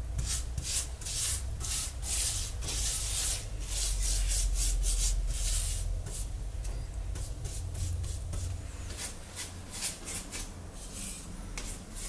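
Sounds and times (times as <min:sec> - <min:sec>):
brush scrubbing paste on glass: 0:00.2 - 0:06.3.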